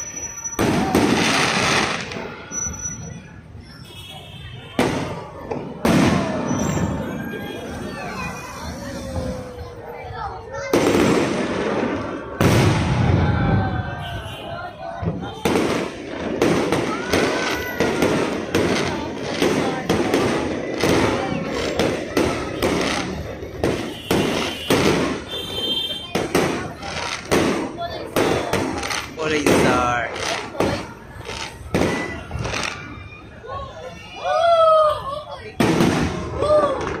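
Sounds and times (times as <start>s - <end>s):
firework rocket launching: 0.0s - 3.2s, 10.6s - 13.7s
firework bangs and crackles: 0.0s - 37.0s.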